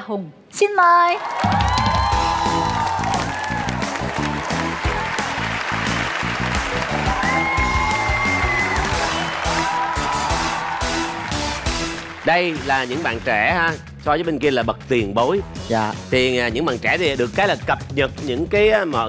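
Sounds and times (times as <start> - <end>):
audience applause: 1.2 - 13.7
upbeat game show music: 1.4 - 19.0.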